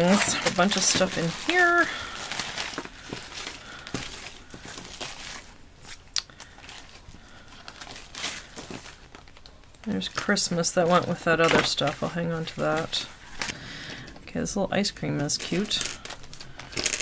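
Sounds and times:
paper pieces being handled: 0.0s - 5.5s
plastic bag crinkling: 0.0s - 13.6s, 15.2s - 17.0s.

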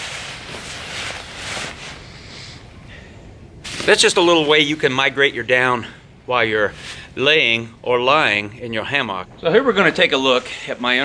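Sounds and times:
hammock fabric rustling: 0.0s - 2.7s, 3.6s - 5.0s.

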